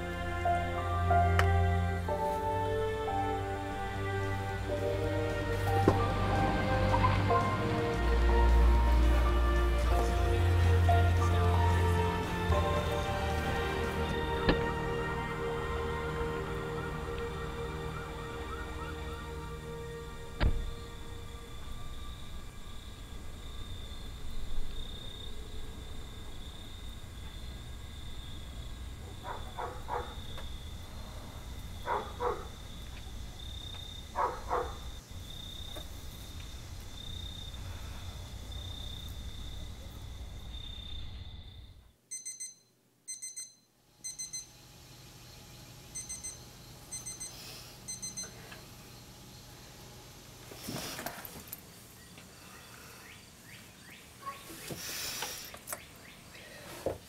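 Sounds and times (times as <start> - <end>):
high-pitched drone: 0.0 - 23.4.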